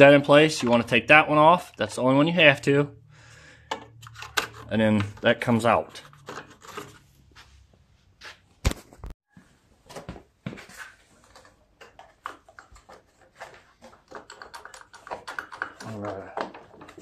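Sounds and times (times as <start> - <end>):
hands handling engine parts: 3.4 - 17.0.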